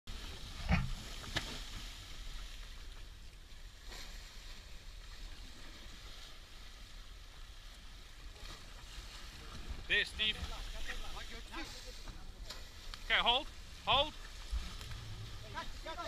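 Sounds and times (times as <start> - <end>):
sea washing around boat: 0.1 - 16.0.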